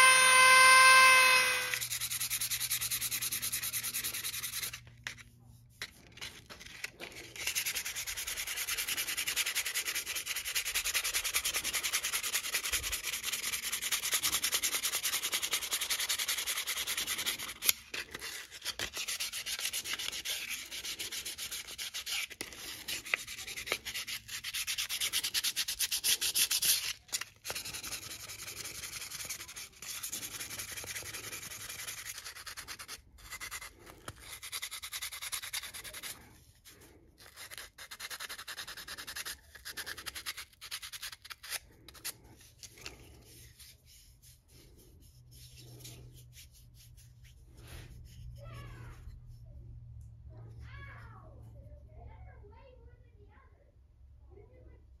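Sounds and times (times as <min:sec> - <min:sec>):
sandpaper rubbing on wood: 0:00.0 - 0:06.0, 0:07.1 - 0:48.4.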